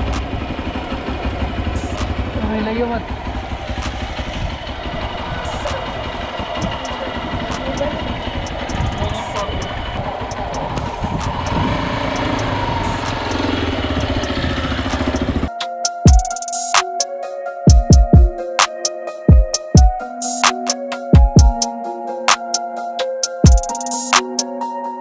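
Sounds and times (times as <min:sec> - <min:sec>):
motorcycle engine idling: 0:00.0 - 0:15.5
electronic music: 0:01.7 - 0:02.4, 0:05.4 - 0:25.0
people talking: 0:01.8 - 0:03.1, 0:05.0 - 0:13.1.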